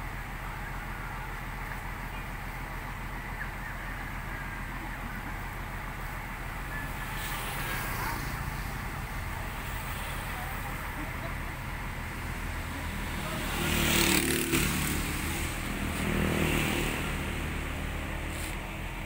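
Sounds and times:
vehicle engine running: 0.0 - 19.0.

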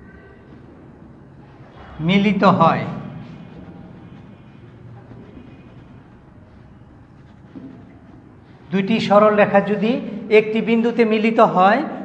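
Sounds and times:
low room hum: 0.0 - 10.4
marker writing on whiteboard: 1.7 - 9.7.

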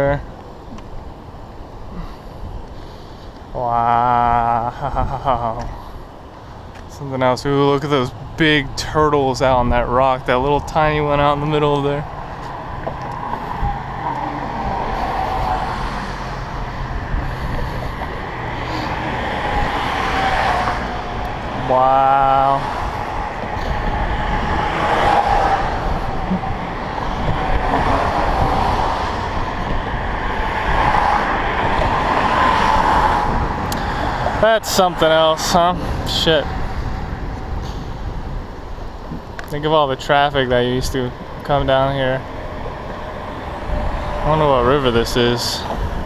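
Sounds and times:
cars passing on a bridge: 0.0 - 46.0
man saying wow: 3.6 - 5.6, 21.5 - 22.7.

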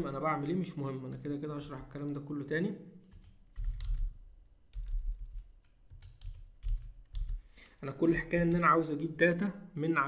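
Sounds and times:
typing on computer keyboard: 3.1 - 8.7.

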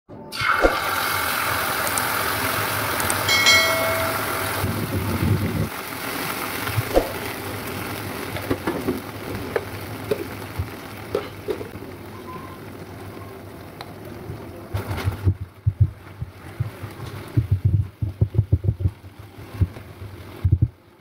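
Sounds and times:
ketchup sizzling in hot oil: 0.3 - 17.5.

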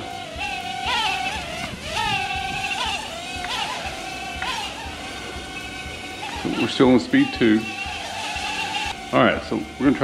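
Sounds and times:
micro drone buzzing: 0.0 - 10.0.

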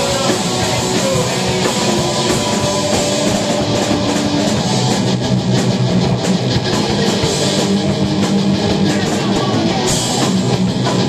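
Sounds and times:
distorted electric guitars: 0.0 - 11.0
drum kit with cymbal hits: 0.0 - 11.0.

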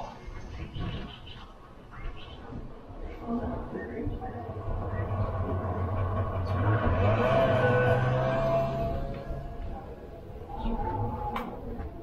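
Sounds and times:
engine-like low drone: 3.2 - 12.0.

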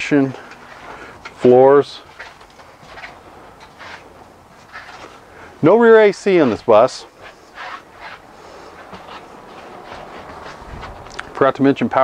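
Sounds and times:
footsteps on bus floor: 2.0 - 5.3, 6.4 - 11.3
bus rumble and rattle: 8.7 - 11.4.

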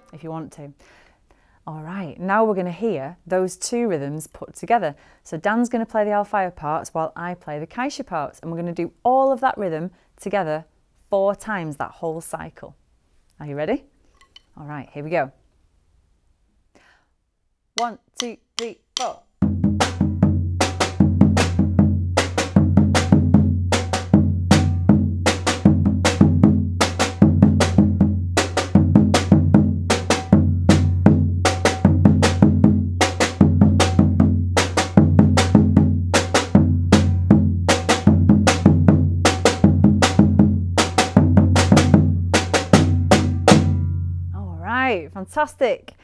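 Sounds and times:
bass drum struck with beater: 19.4 - 44.1.

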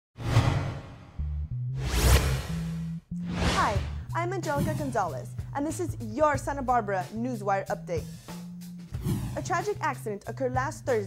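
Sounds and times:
whoosh sound effect: 1.8 - 3.9.

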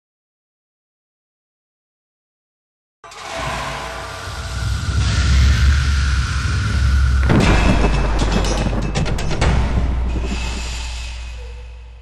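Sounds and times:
deep rumble with hiss: 4.4 - 9.0, 9.6 - 12.0.

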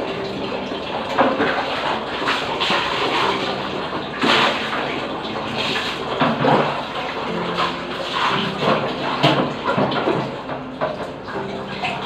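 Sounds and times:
water running in washbasin: 0.0 - 12.0.

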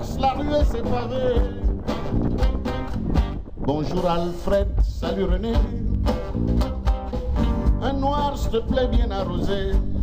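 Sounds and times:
steady low beat: 0.0 - 10.0
strummed acoustic guitar: 0.0 - 10.0
person singing: 3.7 - 6.2.

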